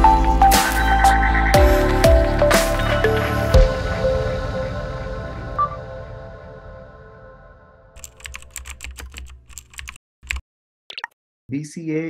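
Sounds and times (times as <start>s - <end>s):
background music: 0.0s - 7.9s.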